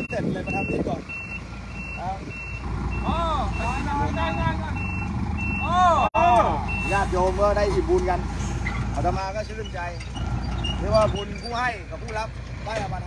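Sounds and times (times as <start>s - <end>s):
reversing alarm beeping: 0.0s - 6.0s, 6.7s - 7.1s
truck engine running: 0.0s - 13.0s.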